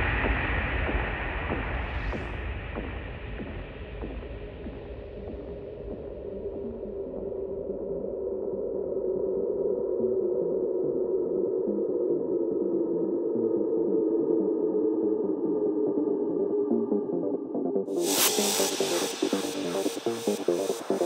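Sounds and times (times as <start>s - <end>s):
muffled synthesizer drone: 0.0s - 21.0s.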